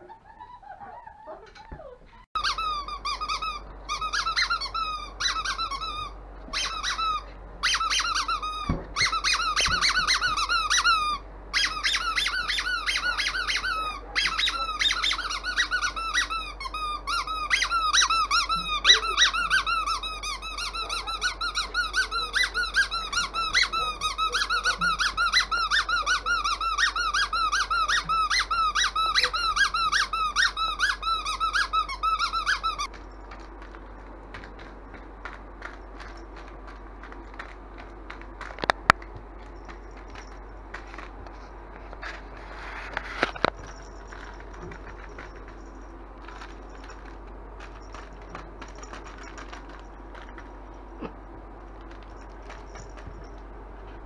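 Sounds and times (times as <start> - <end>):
squeaky dog toy: 0.0 - 32.9.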